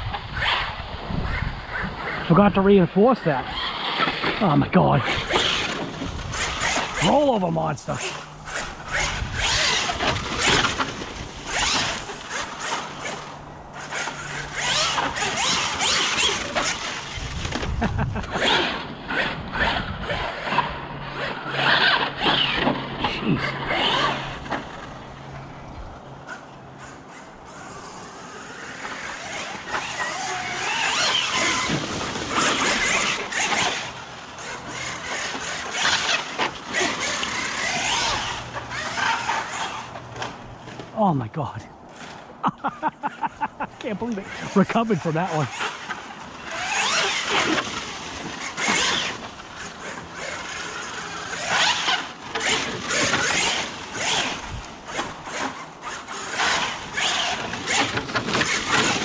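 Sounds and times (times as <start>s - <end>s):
electric motor whining: 0.0s - 40.9s, 43.8s - 59.0s
tyres crackling on dirt: 1.2s - 59.0s.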